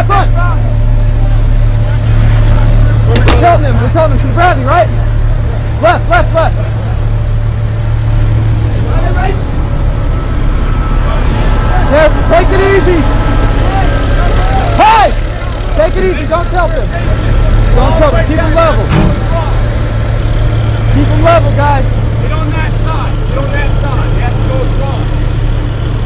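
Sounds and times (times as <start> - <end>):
heavy vehicle engine humming: 0.0 - 26.0
men calling out: 2.6 - 7.3, 10.7 - 24.8.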